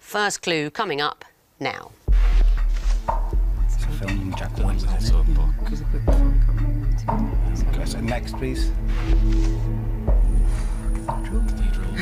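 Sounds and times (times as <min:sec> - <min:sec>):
pulsing electronic timer music: 0:02.1 - 0:12.0.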